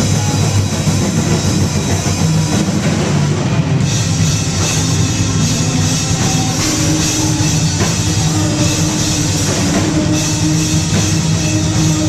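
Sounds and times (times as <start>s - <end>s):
drum kit played fast: 0.0s - 12.0s.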